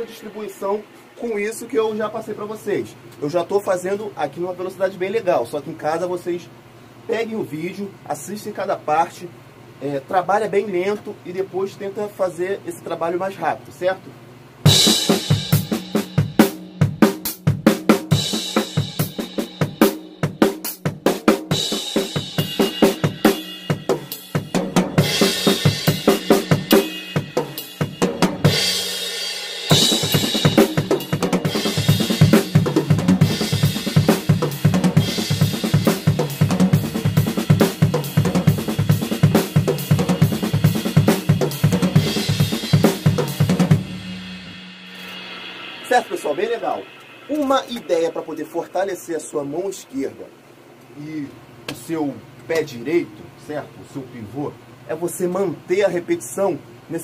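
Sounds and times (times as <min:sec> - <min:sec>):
acoustic drum kit played fast: 0:14.6 - 0:50.1
cymbals ringing: 0:43.3 - 0:49.6.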